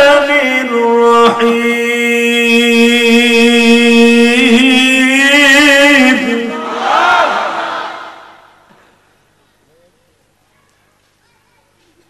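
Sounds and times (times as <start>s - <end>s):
man chanting melodically: 0.0s - 6.7s.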